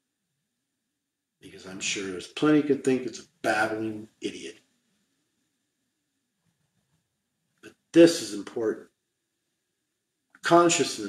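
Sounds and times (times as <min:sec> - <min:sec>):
man speaking: 0:01.4 - 0:04.6, 0:08.0 - 0:08.8, 0:10.4 - 0:11.0.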